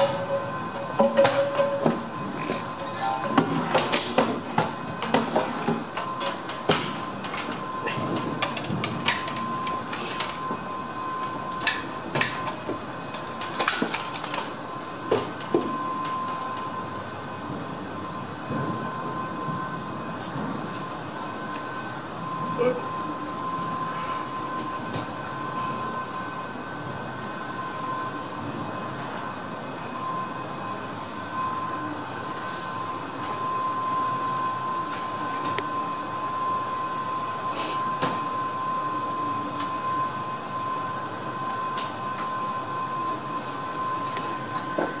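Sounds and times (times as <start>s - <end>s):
steady tone: 0.0s - 3.8s.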